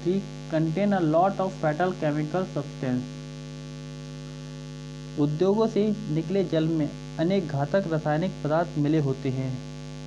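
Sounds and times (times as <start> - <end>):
mains hum: 0.0 - 10.0.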